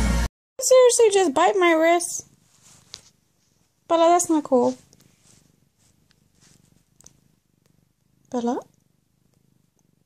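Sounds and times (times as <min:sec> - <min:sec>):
cat purring: 0:00.6 - 0:10.0.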